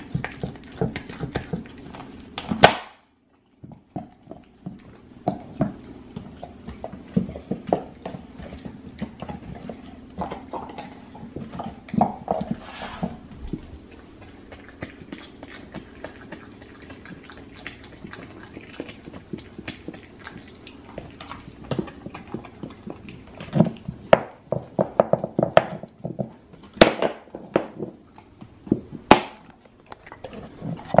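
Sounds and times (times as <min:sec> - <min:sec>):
dog gnawing bone: 0:00.0 - 0:31.0.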